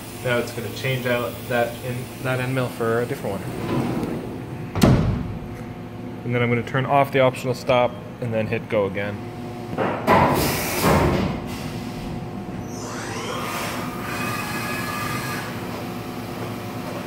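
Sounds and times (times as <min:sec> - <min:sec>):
machine hum: 0:00.0 - 0:17.0.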